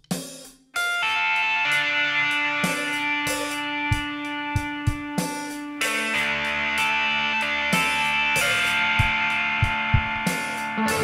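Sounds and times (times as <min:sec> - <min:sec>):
electric mandolins chord: 0:00.8 - 0:11.0.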